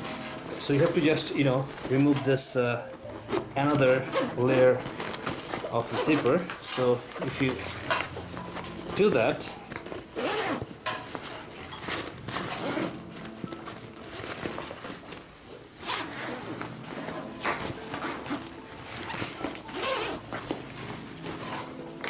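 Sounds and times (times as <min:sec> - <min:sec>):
fabric rustling: 0:00.0 - 0:22.0
zipper being pulled open: 0:03.1 - 0:10.7, 0:11.8 - 0:21.8.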